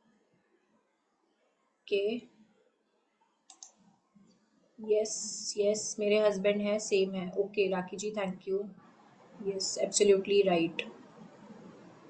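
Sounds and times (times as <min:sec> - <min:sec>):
sharp clicks: 0:03.5 - 0:03.8.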